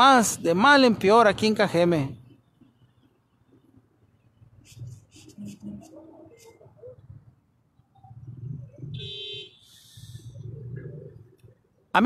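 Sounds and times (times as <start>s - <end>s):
short hiss: 9.6s - 10.3s.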